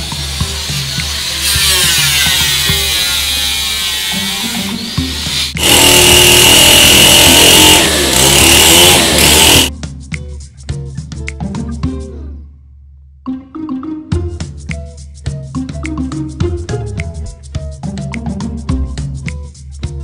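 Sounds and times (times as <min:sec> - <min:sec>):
background music: 0:00.0 - 0:20.0
electric power sander on wood: 0:01.0 - 0:09.7.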